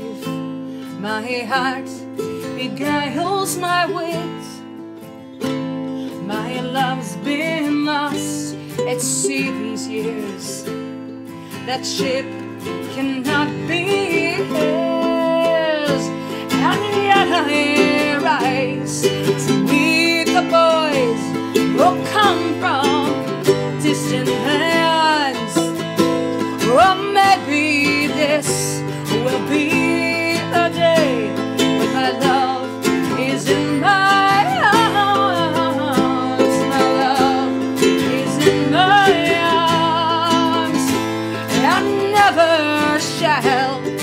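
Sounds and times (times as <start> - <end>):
strummed acoustic guitar: 0.0 - 44.0
ukulele: 0.0 - 44.0
woman singing: 0.0 - 44.0.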